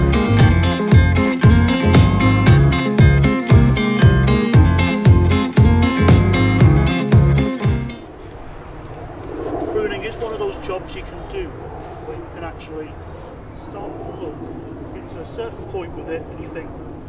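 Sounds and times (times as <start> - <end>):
steady low rumble: 8.0 - 17.0.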